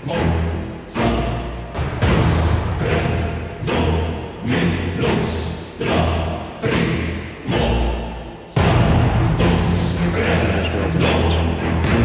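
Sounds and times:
deep drum strikes: 1.7s - 4.3s, 8.6s - 12.0s.

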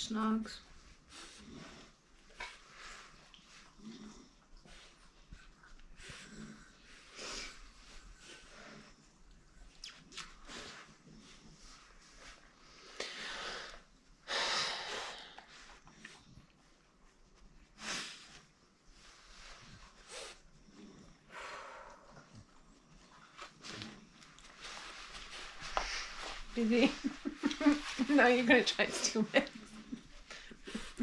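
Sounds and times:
dogs sniffing and snorting: 0.7s - 31.0s.

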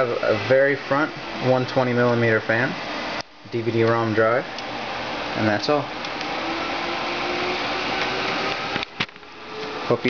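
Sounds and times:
cooling fans whooshing: 0.0s - 10.0s.

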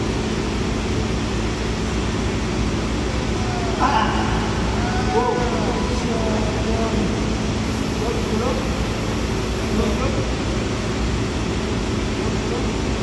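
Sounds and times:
mechanical drone with low hum: 0.0s - 13.0s.

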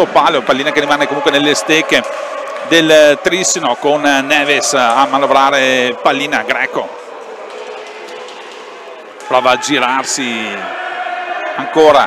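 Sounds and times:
roller skate wheels on wooden floor: 7.2s - 9.5s.

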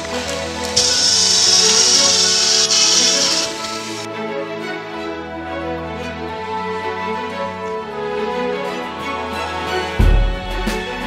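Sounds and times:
power drill with hole saw cutting: 0.0s - 4.1s
background music: 0.0s - 11.0s.

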